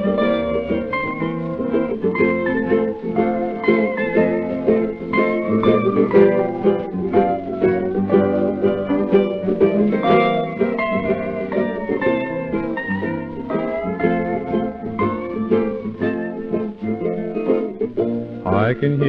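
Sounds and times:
acoustic guitar accompaniment: 0.0s - 19.0s
steel guitar melody: 0.0s - 19.0s.

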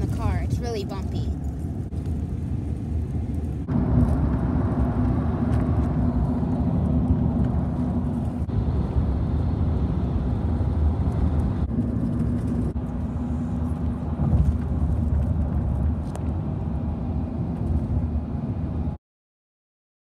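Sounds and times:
tyres and engine rumble: 0.0s - 19.0s.

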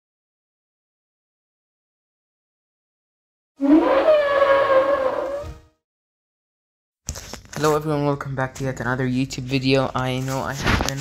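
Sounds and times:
dinosaur call: 3.6s - 5.5s.

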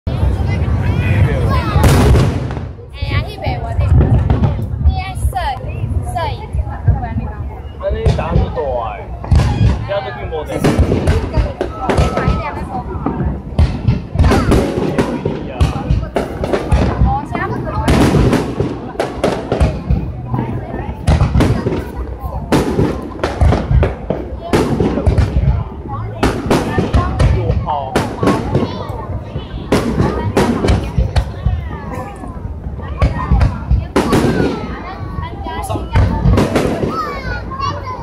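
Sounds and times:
fireworks bursting with loud bangs: 0.1s - 38.0s
voices: 0.1s - 38.0s.

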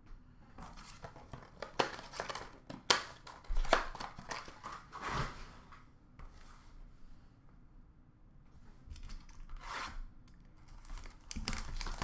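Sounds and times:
packaging snapping: 0.8s - 4.8s, 10.6s - 12.0s
wrapper crinkling: 10.6s - 12.0s.

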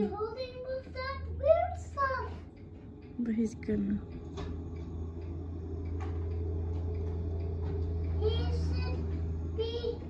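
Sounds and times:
tractor engine humming: 0.0s - 10.0s.

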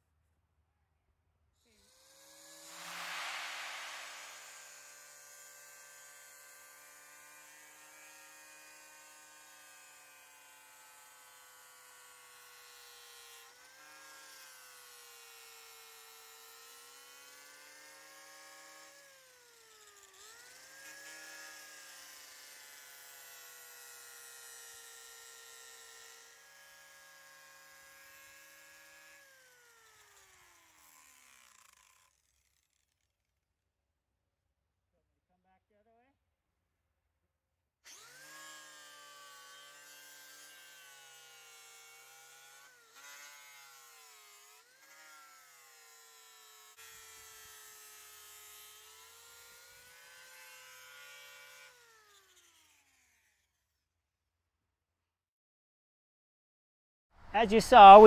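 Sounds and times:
angle grinder grinding wood: 1.7s - 33.0s, 37.9s - 53.2s.

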